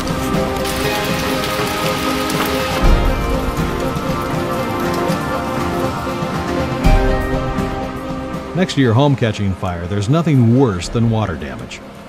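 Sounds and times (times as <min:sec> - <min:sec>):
music with held notes: 0:00.0 - 0:09.6
rain pouring: 0:00.0 - 0:12.0.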